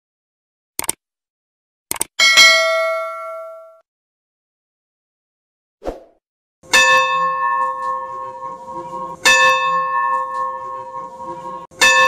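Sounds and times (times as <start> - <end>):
bright bell ding: 2.2 - 3.8, 6.7 - 12.0.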